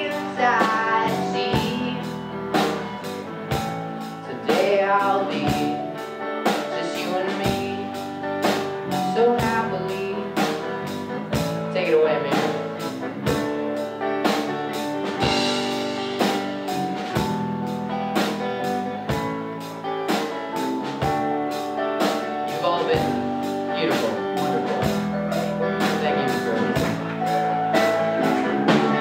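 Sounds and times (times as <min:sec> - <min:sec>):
rock band playing: 0:00.0 - 0:29.0.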